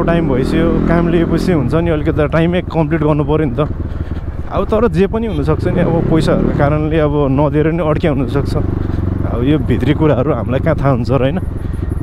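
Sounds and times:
man talking: 0.0s - 3.8s, 4.5s - 11.5s
dirt bike engine droning: 0.0s - 12.0s.

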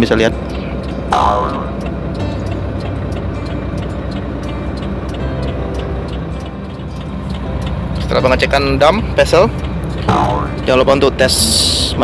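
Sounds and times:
background music: 0.0s - 12.0s
diesel engine idling: 0.0s - 12.0s
regular ticking beat: 0.0s - 12.0s.

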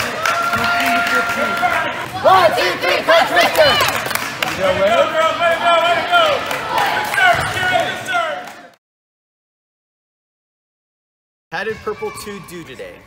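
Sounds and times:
girls shouting a cheer: 0.1s - 4.1s.

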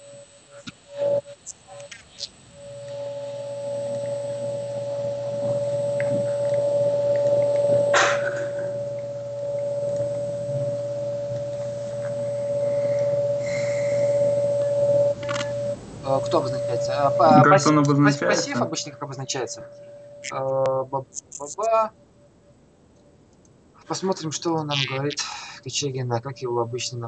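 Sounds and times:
steady tone: 0.0s - 22.6s, 23.8s - 27.0s
low hum: 0.0s - 22.8s, 23.6s - 27.0s.

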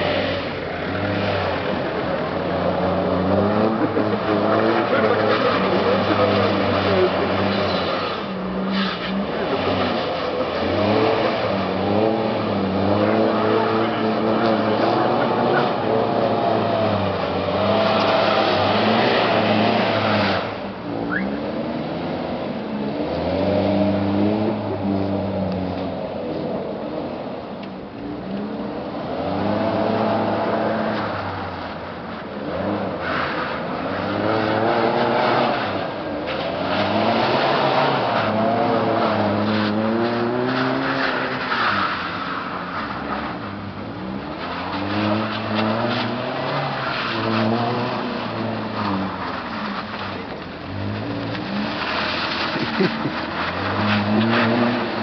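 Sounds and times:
tyres sliding on ice: 0.0s - 22.2s, 28.4s - 55.0s
truck engine revving: 0.0s - 22.4s, 32.5s - 55.0s.

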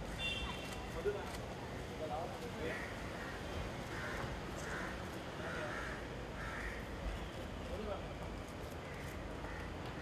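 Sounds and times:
harsh bird caws: 2.7s - 6.9s.

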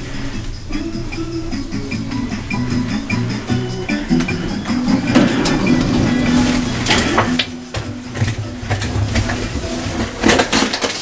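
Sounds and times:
elevator mechanical rumble and hum: 0.0s - 10.2s
elevator doors sliding open: 0.0s - 10.3s.

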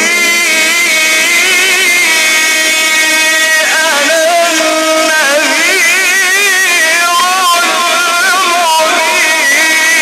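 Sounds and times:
man chanting through microphones: 3.1s - 10.0s.

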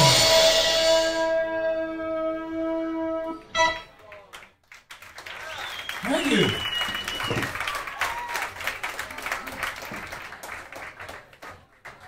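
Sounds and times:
cymbal crash: 0.0s - 1.4s.

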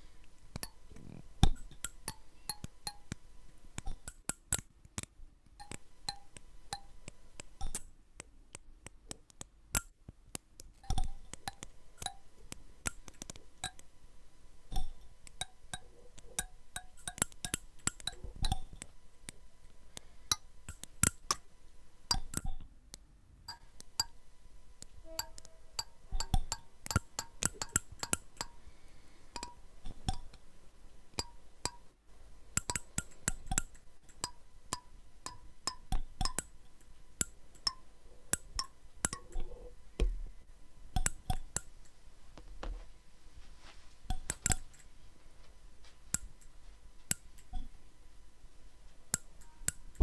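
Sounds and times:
comb teeth plucked clicking: 0.3s - 3.2s, 3.8s - 13.9s, 14.7s - 19.4s, 20.0s - 21.4s, 22.1s - 24.2s, 24.8s - 28.6s, 29.4s - 30.4s, 31.1s - 31.9s, 32.6s - 40.1s, 41.0s - 42.0s, 44.1s - 44.9s, 47.1s - 47.7s, 49.1s - 50.0s.

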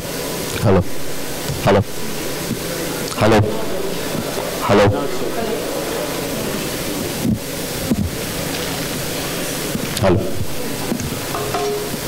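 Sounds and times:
sound system hiss: 0.0s - 12.0s.

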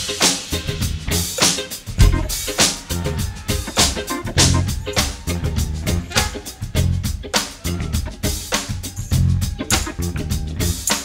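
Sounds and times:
kick drum thumps: 2.0s - 2.3s
snare and rimshot hits: 9.6s - 10.1s.

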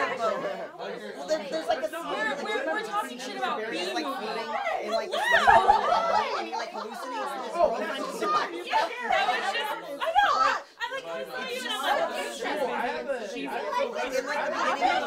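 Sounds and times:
people talking over one another: 0.0s - 15.0s.

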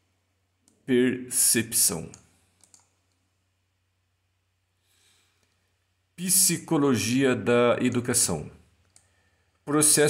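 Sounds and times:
computer mouse clicks: 2.1s - 3.2s, 8.8s - 9.1s.

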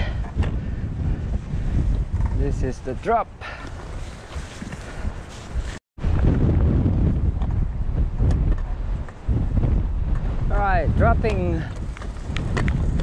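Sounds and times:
wind rushing over microphone: 0.0s - 13.0s.

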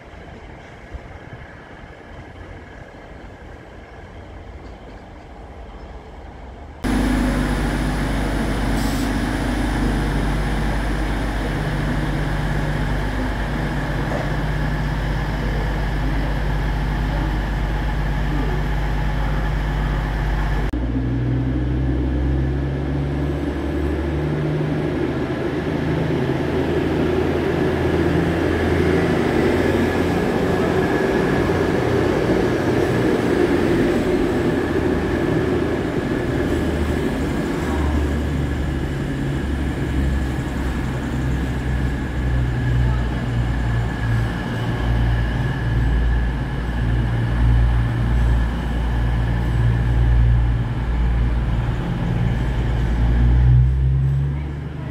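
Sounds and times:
diesel train engine drone: 0.0s - 54.9s.

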